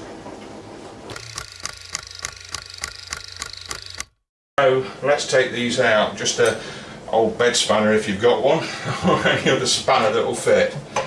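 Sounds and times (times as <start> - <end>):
rapid clicking: 1.1 - 4.2.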